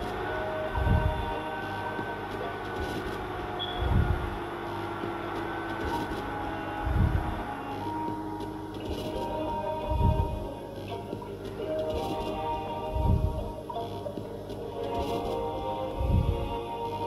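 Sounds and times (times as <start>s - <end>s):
film music with held tones: 0.0s - 17.0s.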